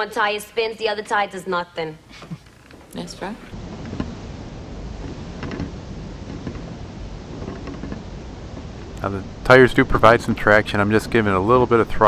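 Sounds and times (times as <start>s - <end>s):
wind rumbling on microphone: 3.4s - 12.0s.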